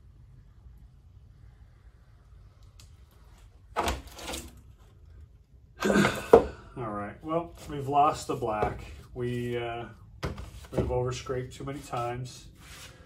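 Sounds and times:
scraper dragged across wet paint: 11.7s - 13.0s.

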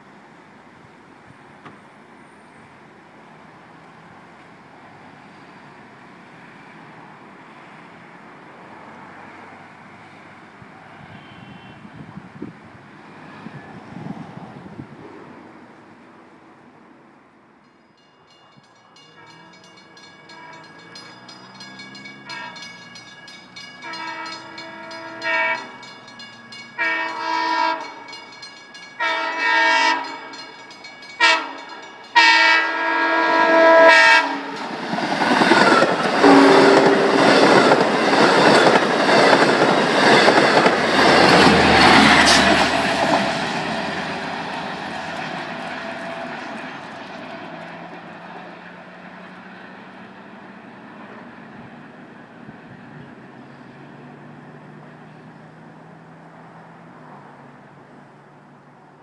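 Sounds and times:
train horn blasts: 11.0s - 12.0s, 19.0s - 23.0s, 23.7s - 28.3s, 28.9s - 34.8s, 35.4s - 37.8s
diesel locomotive rumble: 18.9s - 58.7s
train wheel clatter: 34.5s - 48.5s.

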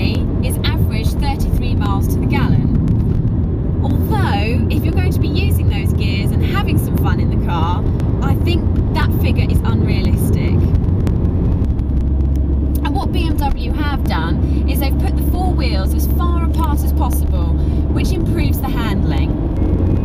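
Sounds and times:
woman talking: 0.0s - 2.8s, 3.8s - 10.7s, 12.8s - 19.4s
car engine drone: 0.0s - 20.0s.

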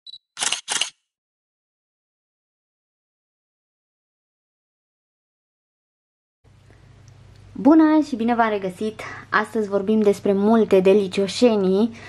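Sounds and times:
short high beep: 0.0s - 0.3s
camera shutter click: 0.1s - 1.0s.

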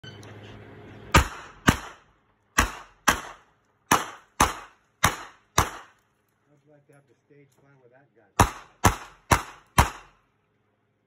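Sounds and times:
handgun shots with echo: 1.2s - 6.0s, 8.4s - 10.2s.

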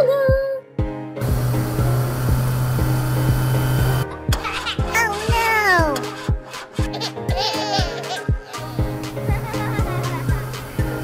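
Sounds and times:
children's cartoon music: 0.0s - 1.2s, 4.0s - 11.0s
humming hissing machine sound effect: 1.2s - 4.0s, 8.6s - 11.0s.

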